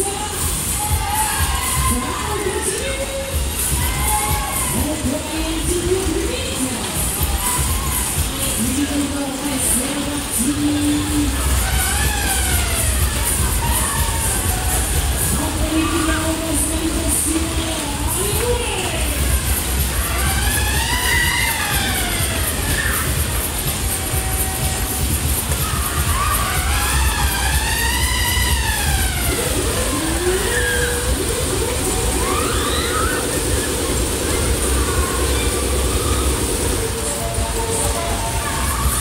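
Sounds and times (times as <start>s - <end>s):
steady low rumble: 10.6s - 39.0s
siren-like wail from loudspeakers: 26.1s - 39.0s.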